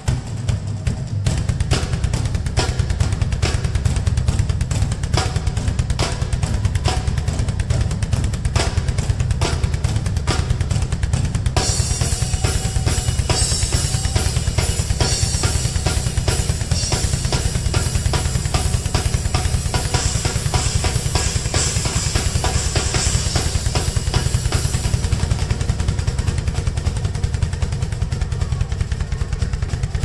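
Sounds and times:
bass drum pulse: 0.0s - 30.0s
cymbals washing: 11.6s - 26.4s.

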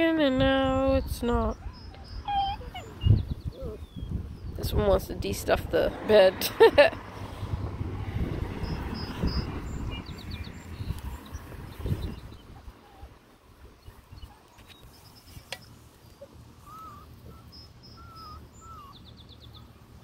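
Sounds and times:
small birds chirping: 0.3s - 5.6s, 8.3s - 20.0s
puppies scuffling on grass: 13.9s - 17.8s.

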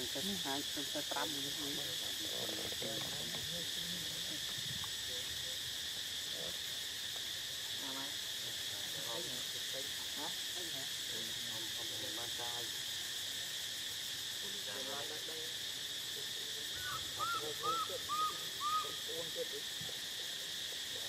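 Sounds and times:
shrill insect chorus: 0.0s - 21.0s.

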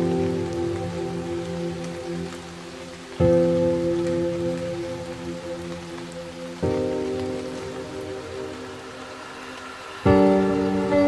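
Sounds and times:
slow piano chords: 0.0s - 11.0s
steady rain hiss: 0.0s - 11.0s.

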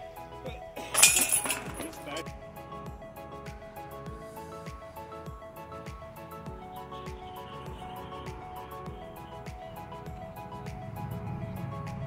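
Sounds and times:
chains jangling: 0.8s - 2.2s.

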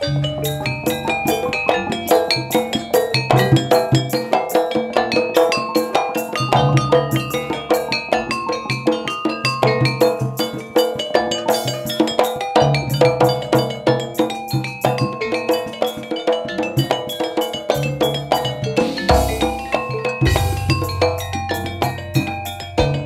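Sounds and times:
low beats: 19.1s - 23.0s.

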